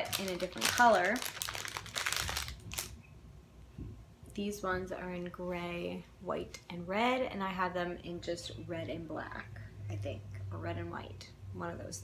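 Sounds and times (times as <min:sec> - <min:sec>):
packaging crinkling: 0:00.0 - 0:03.0.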